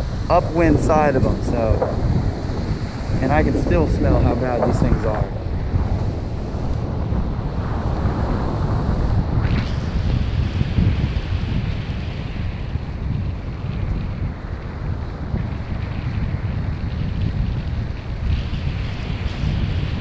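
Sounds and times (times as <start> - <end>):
ocean surf washing in: 0.0 - 13.5
wind buffeting microphone: 0.0 - 20.0.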